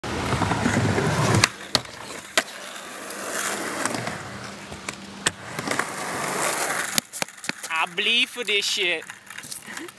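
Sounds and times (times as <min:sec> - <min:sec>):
skateboard trucks grinding on ledge: 0:00.0 - 0:07.7
skateboard rolling noise: 0:00.0 - 0:09.8
skateboard clack: 0:00.1 - 0:09.9.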